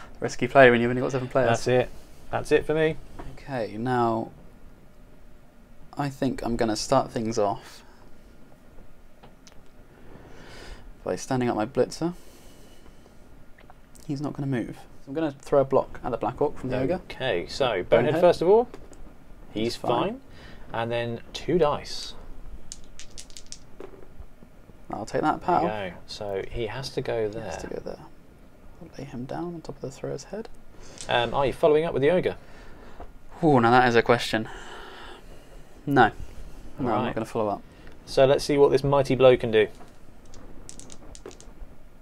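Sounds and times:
dice clattering on game mat: 22.7 - 24.0, 39.8 - 41.6.

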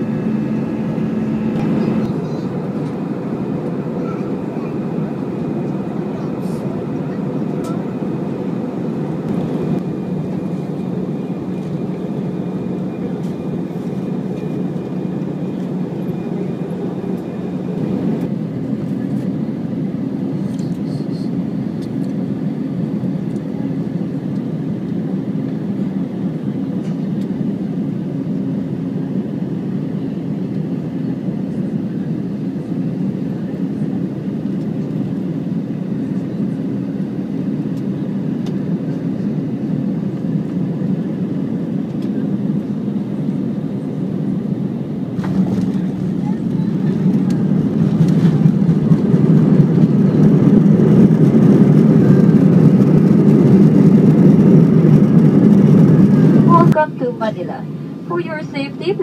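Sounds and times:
reverse thrust roar: 0.0 - 18.3, 45.0 - 59.0
airliner engine and airflow drone: 0.0 - 59.0.

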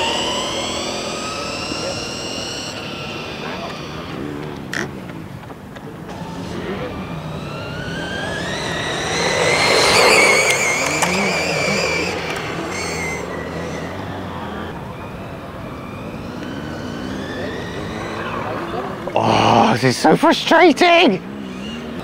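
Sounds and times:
electric motor whining: 0.0 - 19.9.

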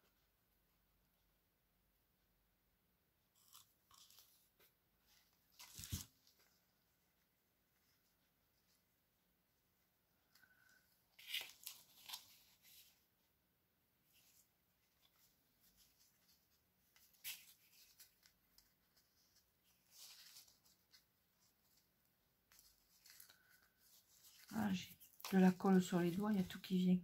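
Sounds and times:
paper rustling and crinkling: 3.4 - 6.8, 10.3 - 13.0, 14.1 - 27.0.

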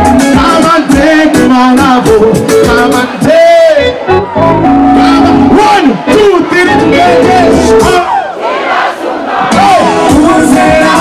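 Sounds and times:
crowd singing and shouting: 0.0 - 11.0
live concert music: 0.0 - 11.0.

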